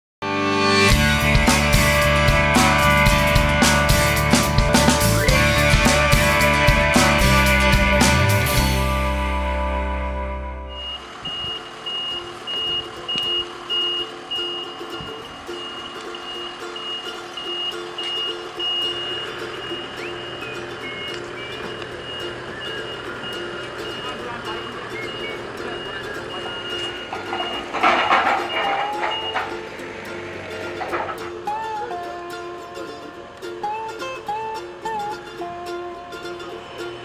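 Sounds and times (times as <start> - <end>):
vehicle noise: 0.6 - 37.0
truck reversing alarm beeping: 9.6 - 31.9
voices: 10.8 - 37.0.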